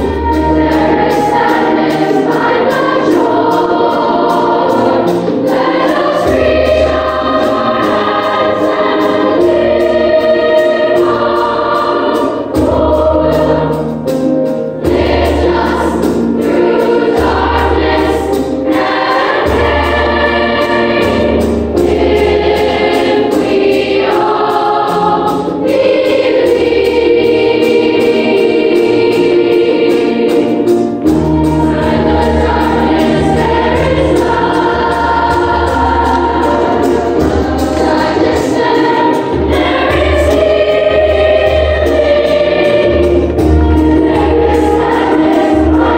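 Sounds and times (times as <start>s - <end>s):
children's choir singing: 0.0s - 45.9s.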